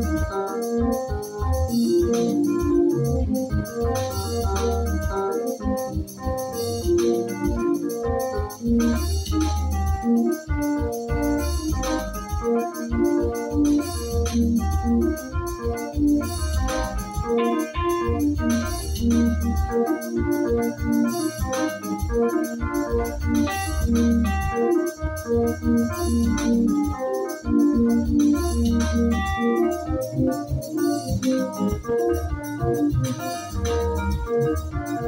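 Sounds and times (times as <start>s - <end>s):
bass line: 0.0s - 35.0s
drum beat: 0.0s - 35.0s
keyboard melody notes: 0.0s - 35.0s.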